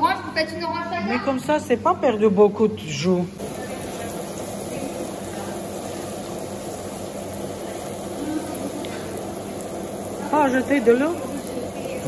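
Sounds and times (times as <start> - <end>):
food sizzling in a pan: 0.0 - 12.0
low kitchen hum: 0.0 - 12.0.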